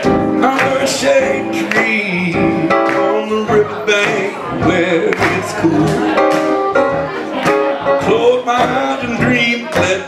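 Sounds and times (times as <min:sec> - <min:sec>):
man singing: 0:00.0 - 0:06.6, 0:07.3 - 0:10.0
electric keyboard playing: 0:00.0 - 0:10.0.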